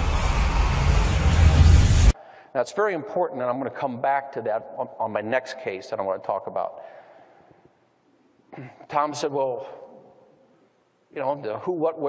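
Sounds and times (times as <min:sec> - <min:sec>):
deep steady rumble: 0:00.0 - 0:02.2
dense wash of noise: 0:00.0 - 0:02.2.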